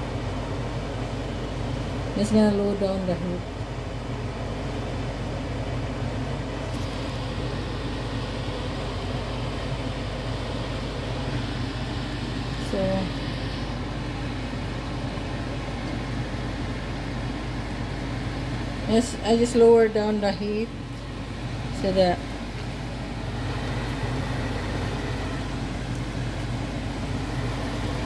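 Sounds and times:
appliance hum and hiss: 0:00.0 - 0:28.0.

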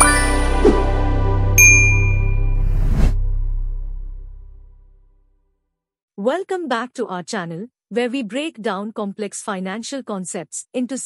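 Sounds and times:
deep drone: 0:00.0 - 0:05.2
bright bell-like ding: 0:01.6 - 0:02.6.

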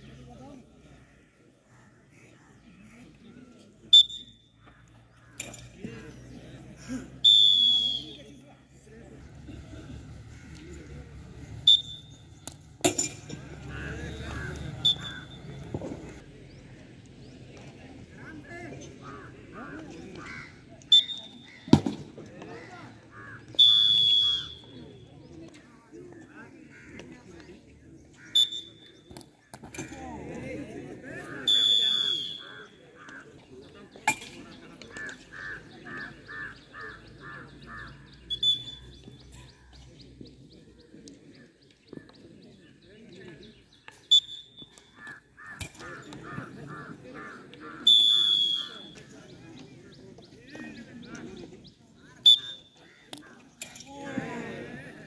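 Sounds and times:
spectators chattering: 0:00.0 - 0:55.0
referee's whistle blasts: 0:03.9 - 0:04.4, 0:07.2 - 0:08.2, 0:11.7 - 0:12.2, 0:14.1 - 0:15.7, 0:20.9 - 0:21.5, 0:23.6 - 0:24.8, 0:28.3 - 0:28.9, 0:31.4 - 0:32.6, 0:38.3 - 0:38.9, 0:44.1 - 0:44.8, 0:47.8 - 0:49.0, 0:52.2 - 0:52.8
bird calling repeated notes: 0:14.4 - 0:15.4, 0:28.2 - 0:29.0, 0:31.5 - 0:33.1, 0:47.6 - 0:49.0, 0:52.2 - 0:52.8.

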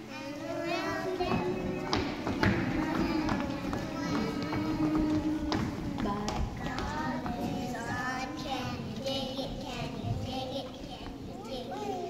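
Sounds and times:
instrumental children's song music: 0:00.0 - 0:11.5.

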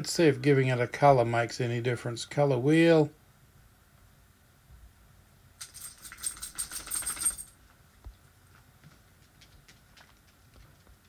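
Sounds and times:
jingling metallic clicks: 0:05.6 - 0:07.6.

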